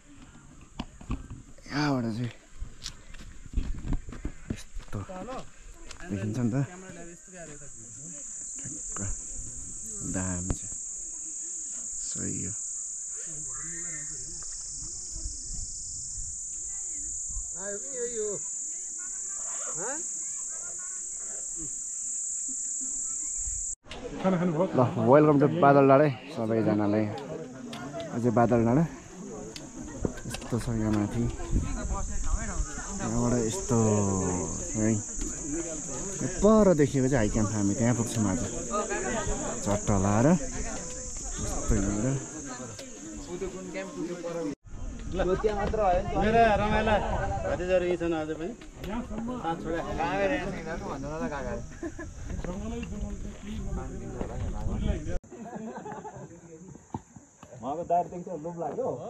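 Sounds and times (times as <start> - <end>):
insect chorus buzzing: 0.0 - 23.8, 26.6 - 59.0
people talking: 6.0 - 12.6, 26.2 - 56.5.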